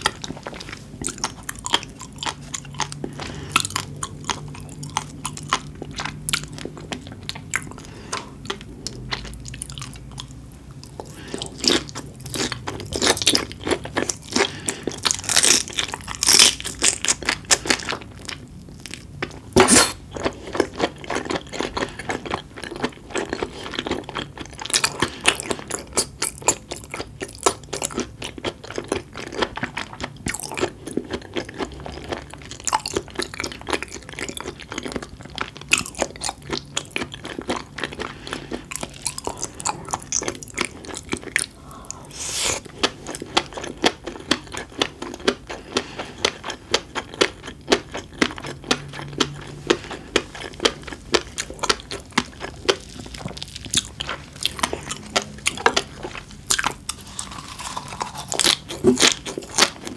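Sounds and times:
wet chewing and mouth smacking: 0.0 - 59.9.

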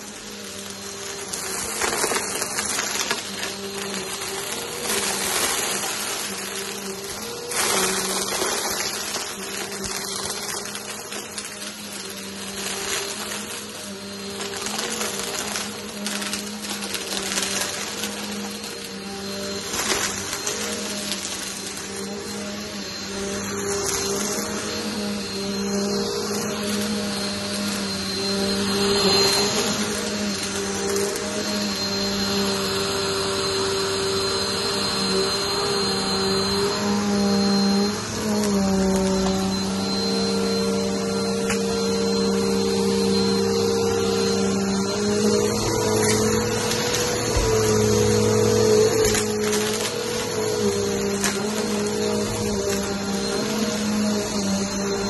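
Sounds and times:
vacuum cleaner motor humming: 0.0 - 55.0.

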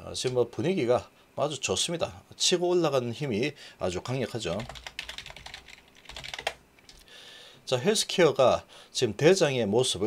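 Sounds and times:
computer keyboard typing: 4.5 - 7.0.

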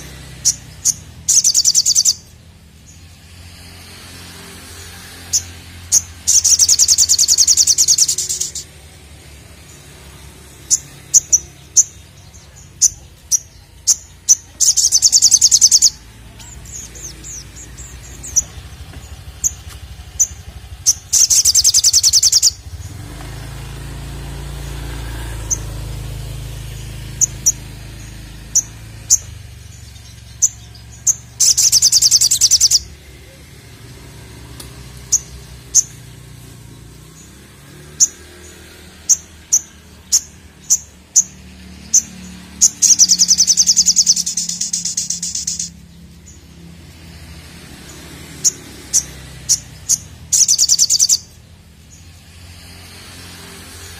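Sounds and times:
bird high chirps: 0.0 - 3.2, 4.6 - 52.4
bird rapid rattling trill: 0.0 - 33.1, 34.3 - 53.9.

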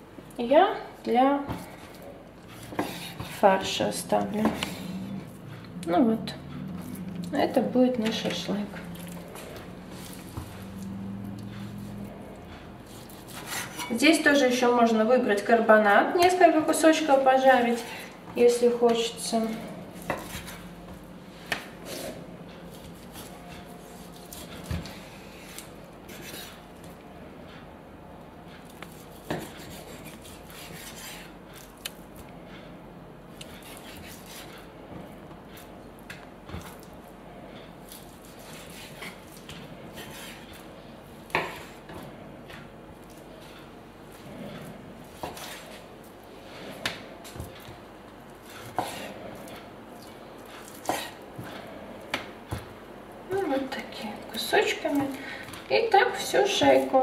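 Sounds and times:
knife slicing raw meat: 28.7 - 31.7.

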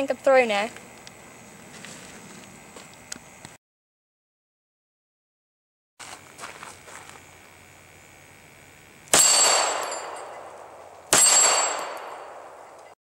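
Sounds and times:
pistol shots ringing out: 9.1 - 12.8.

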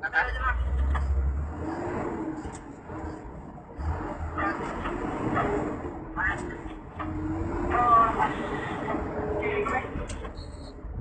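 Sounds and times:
heavy vehicle engine and road rumble: 0.0 - 11.0.

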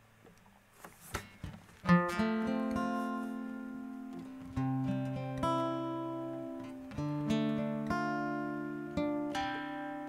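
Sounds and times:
guitar chord strummed and ringing: 1.9 - 10.0.

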